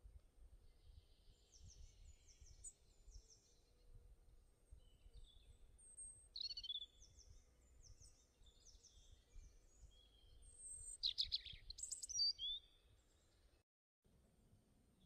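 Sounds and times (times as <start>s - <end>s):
small birds chirping: 0.6s - 3.9s, 4.6s - 13.6s.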